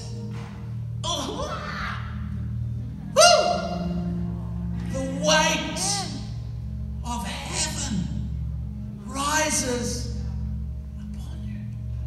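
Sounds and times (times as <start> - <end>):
keyboard low pad chord: 0.0 - 12.0
person preaching: 1.0 - 2.3, 3.0 - 4.2, 4.9 - 6.4, 7.0 - 8.3, 9.0 - 10.4.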